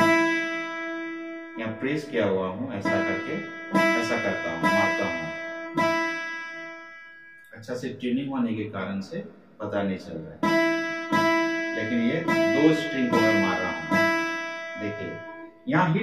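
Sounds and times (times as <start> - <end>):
acoustic guitar notes ringing: 0.0 - 16.0.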